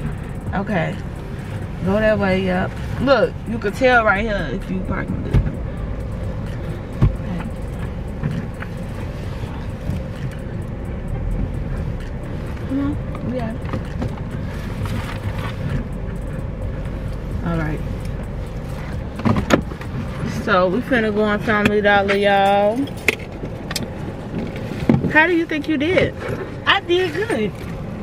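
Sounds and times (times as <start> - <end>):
car engine and tyres rumbling: 0.0 - 28.0.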